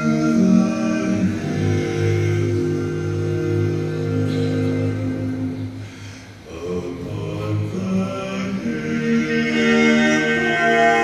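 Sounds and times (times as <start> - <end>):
men singing in harmony: 0.0 - 11.0.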